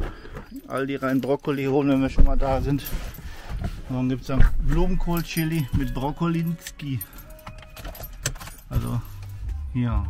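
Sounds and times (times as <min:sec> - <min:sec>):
keys jangling: 0:00.3 - 0:09.4.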